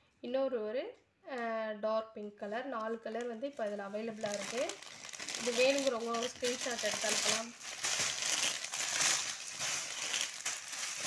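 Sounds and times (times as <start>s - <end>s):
plastic packaging crinkling: 3.2s - 11.0s.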